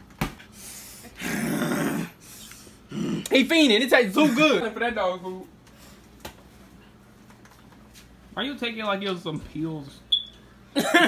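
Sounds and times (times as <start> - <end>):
person growling vocal noise: 1.2 - 2.2, 2.9 - 3.4.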